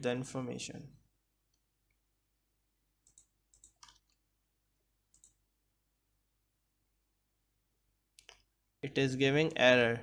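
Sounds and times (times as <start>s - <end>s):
computer mouse and keyboard clicks: 3.0s - 4.2s, 5.1s - 5.4s, 8.2s - 8.5s.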